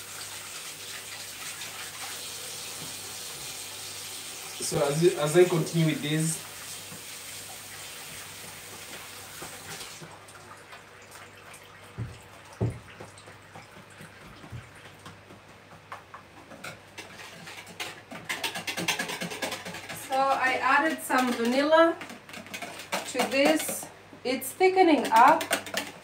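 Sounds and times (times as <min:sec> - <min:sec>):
tap running: 0:02.6 - 0:03.6, 0:08.0 - 0:10.1, 0:11.9 - 0:16.8
soft knocks: 0:12.0 - 0:13.3.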